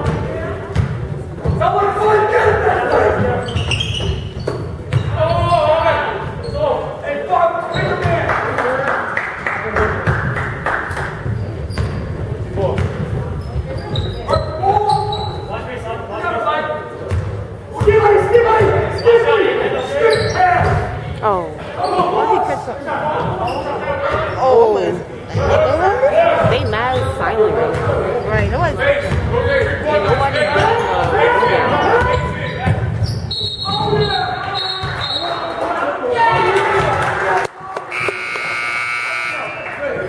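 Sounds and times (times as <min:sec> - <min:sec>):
echoing voices in gymnasium: 0:00.0 - 0:40.0.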